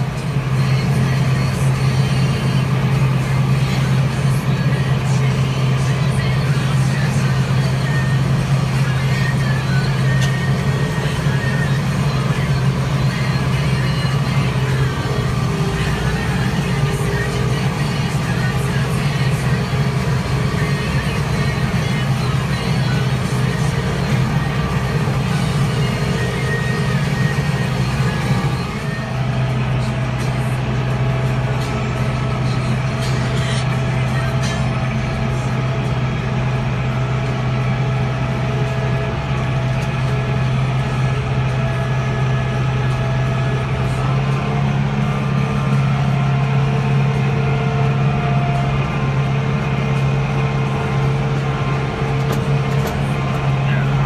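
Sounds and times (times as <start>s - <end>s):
tractor engine droning: 0.0s - 54.0s.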